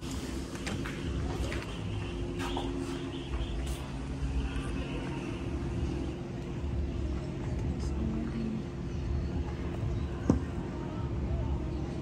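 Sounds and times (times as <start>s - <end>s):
faint steady hum: 0.0s - 12.0s
low outdoor rumble: 0.0s - 12.0s.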